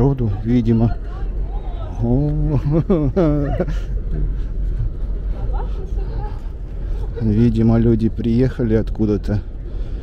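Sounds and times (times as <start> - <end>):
faint voices: 0.0 - 10.0
steady low rumble: 0.0 - 10.0.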